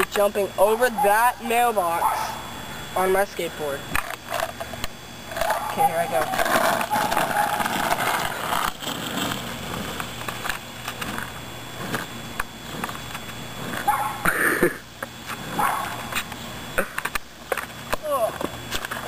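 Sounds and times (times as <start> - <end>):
skateboard wheels rolling on concrete: 0.0 - 2.4, 3.0 - 19.0
wheels clicking over pavement joints: 3.9 - 14.4.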